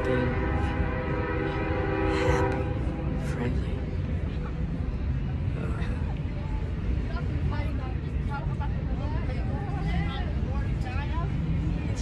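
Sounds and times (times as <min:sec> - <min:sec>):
train horn: 0:00.0 - 0:03.4.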